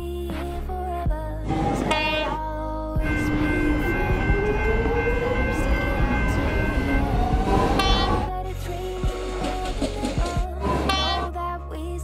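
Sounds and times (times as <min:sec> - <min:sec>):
traction motor whine: 0:03.0 - 0:08.3
train running gear rumble: 0:03.0 - 0:11.0.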